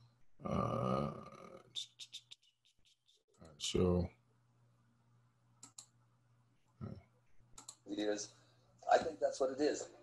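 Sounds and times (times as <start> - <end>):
computer mouse clicks: 5.6 - 6.0, 7.4 - 7.8.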